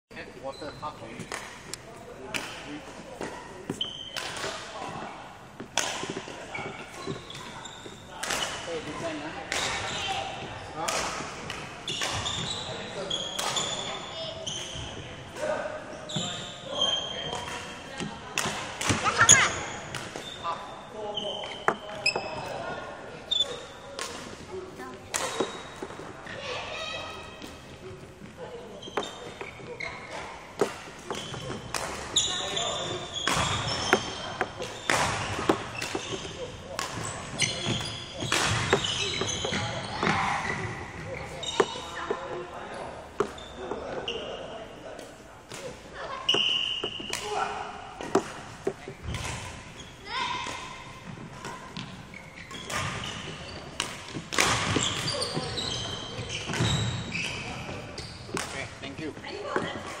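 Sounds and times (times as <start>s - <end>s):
court shoes squeaking: 0.1s - 60.0s.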